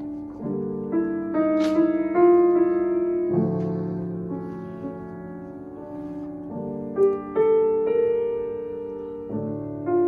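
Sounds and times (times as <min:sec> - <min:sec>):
piano chords ringing: 0:00.0 - 0:10.0.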